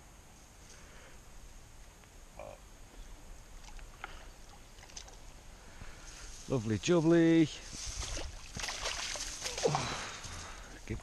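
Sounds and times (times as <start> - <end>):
fish splashing in water: 8.0 - 10.0.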